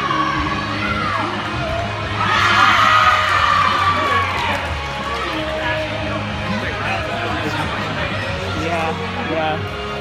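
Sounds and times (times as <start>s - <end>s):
background music: 0.0s - 10.0s
crowd cheering: 2.1s - 5.6s.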